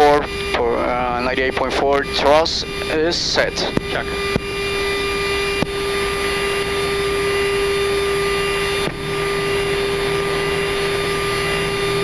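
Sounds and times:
jet engines at takeoff thrust: 0.0s - 12.0s.

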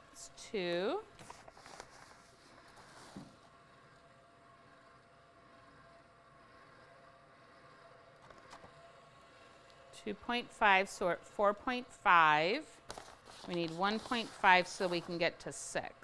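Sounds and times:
soft rustle: 12.9s - 15.2s.

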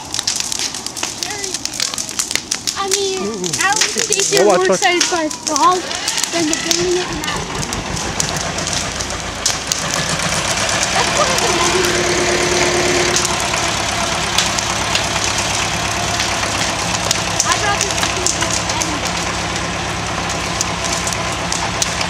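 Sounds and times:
bulldozer engine running: 0.0s - 22.0s
crackle of burning wood: 0.0s - 22.0s.

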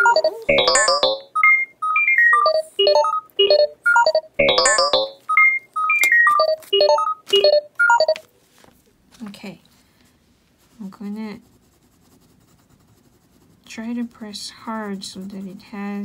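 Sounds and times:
electronic ringtone melody: 0.0s - 8.2s.

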